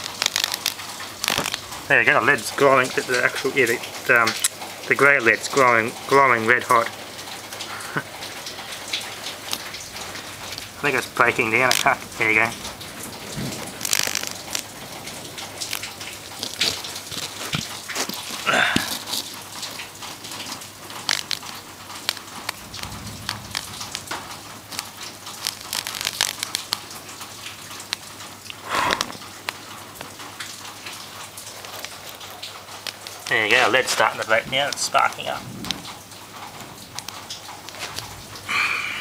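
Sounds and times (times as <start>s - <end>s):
electric arc crackling and sizzling: 0.0s - 3.5s, 9.0s - 28.0s.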